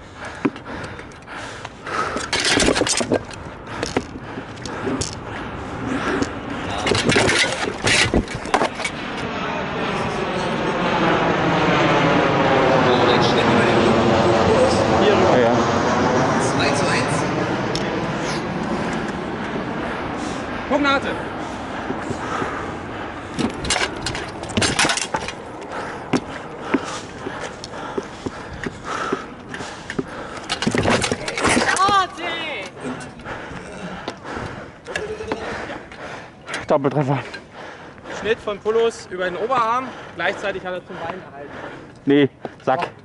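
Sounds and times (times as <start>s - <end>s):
swords clacking on shields: 6.8s - 8.9s, 23.4s - 25.4s
people calling out: 31.2s - 33.0s, 34.9s - 35.8s.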